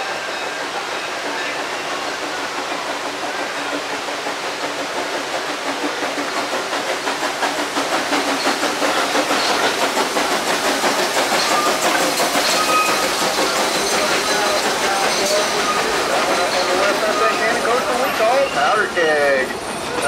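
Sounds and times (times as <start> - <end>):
steam hiss: 0.0 - 20.0
steam locomotive exhaust beat: 0.0 - 20.0
rattling coaches: 8.0 - 20.0.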